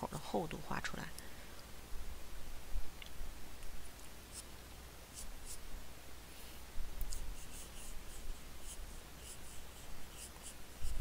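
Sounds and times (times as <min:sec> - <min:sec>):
pencil scratching on paper: 0:05.1 - 0:05.6, 0:07.1 - 0:11.0.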